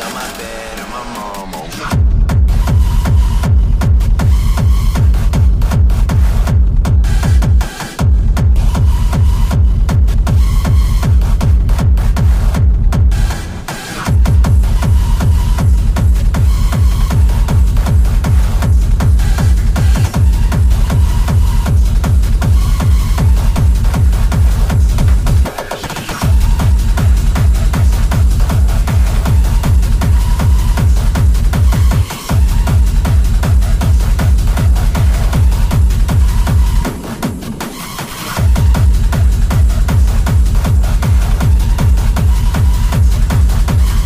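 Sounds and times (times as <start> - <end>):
hard techno music: 0.0 - 44.0
heavy kick drum: 1.9 - 44.0.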